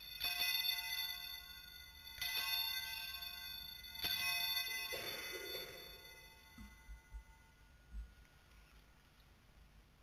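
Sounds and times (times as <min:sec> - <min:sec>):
altar bells ringing: 0:00.0 - 0:08.2.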